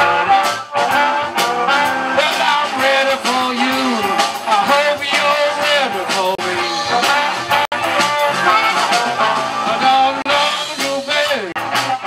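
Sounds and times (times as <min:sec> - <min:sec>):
blues band playing: 0:00.0 - 0:12.0
harmonica bending notes: 0:00.0 - 0:12.0.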